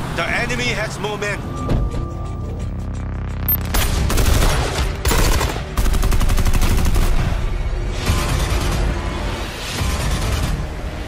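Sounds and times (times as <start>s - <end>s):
rapid automatic gunfire: 3.7s - 7.3s.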